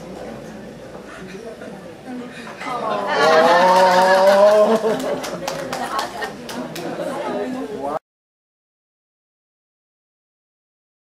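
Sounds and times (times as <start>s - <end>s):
people chattering in a hall: 0.0s - 8.0s.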